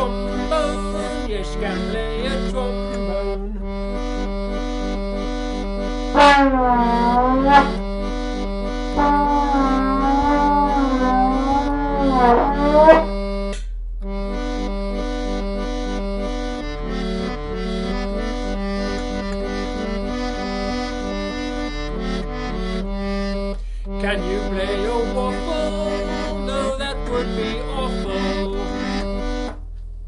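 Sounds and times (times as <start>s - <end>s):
electronic organ accompaniment: 0.0s - 29.6s
trombone sliding notes: 5.6s - 13.4s.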